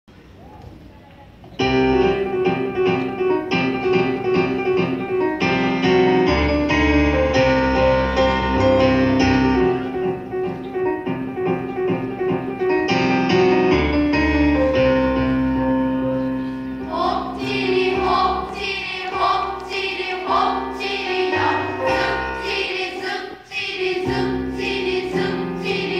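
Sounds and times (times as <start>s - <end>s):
electric keyboard chords: 1.6s - 22.9s.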